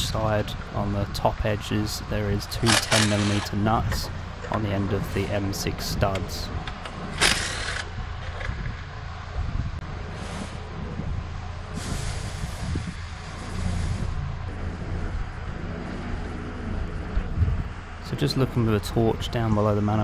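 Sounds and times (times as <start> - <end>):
steady low hum: 0.0 - 20.0
air tool hissing: 10.1 - 10.7, 11.7 - 14.2.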